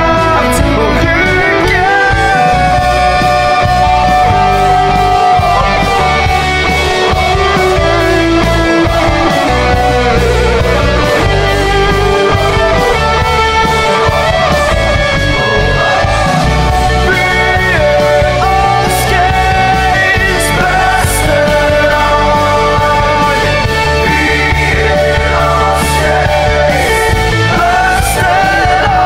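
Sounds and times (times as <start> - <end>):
bass: 0.0 - 29.0
lead electric guitar melody: 0.0 - 29.0
drum beat: 1.9 - 29.0.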